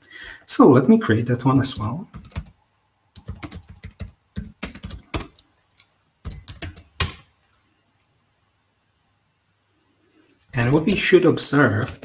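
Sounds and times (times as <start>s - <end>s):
computer keyboard typing: 1.5s - 7.3s, 10.4s - 11.1s.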